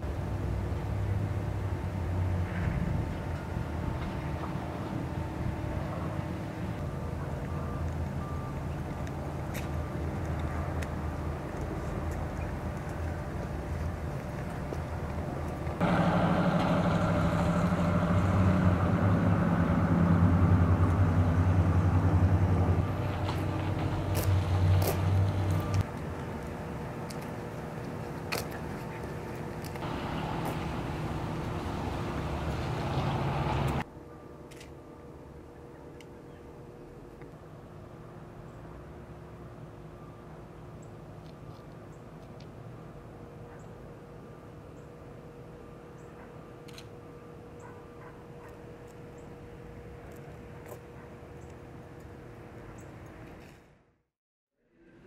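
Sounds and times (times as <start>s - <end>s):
vehicle engine hum: 0.0s - 34.0s.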